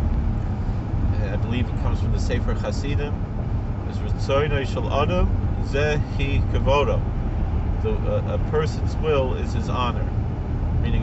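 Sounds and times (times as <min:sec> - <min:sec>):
car engine rumble inside cabin: 0:00.0 - 0:11.0
man speaking: 0:01.2 - 0:03.2, 0:03.9 - 0:07.0, 0:07.8 - 0:10.1.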